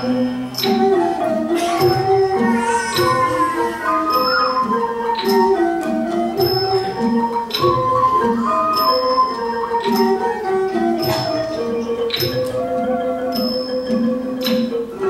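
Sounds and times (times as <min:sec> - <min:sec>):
xylophone ensemble music: 0:00.0 - 0:15.0.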